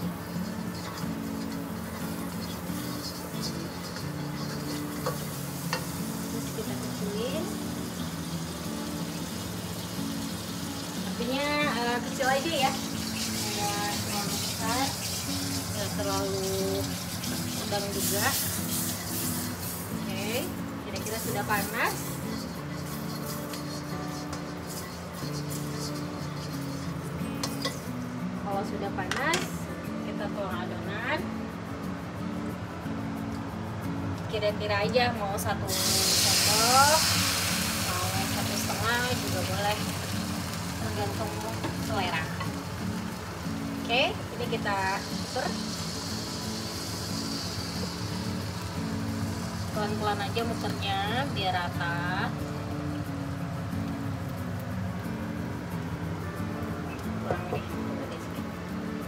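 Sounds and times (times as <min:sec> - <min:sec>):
background music: 0:00.0 - 0:59.0
margarine sizzling in a wok: 0:00.0 - 0:59.0.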